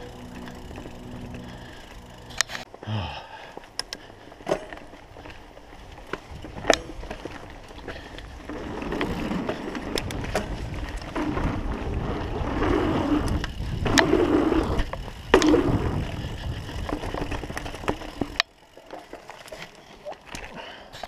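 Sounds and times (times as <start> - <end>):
bike rattles and clicks: 0.0 - 21.0
mountain bike rolling rumble: 0.0 - 21.0.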